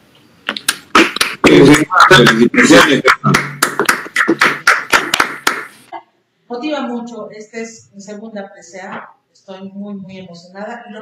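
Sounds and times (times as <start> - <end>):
hands clapping: 0.5 - 5.8.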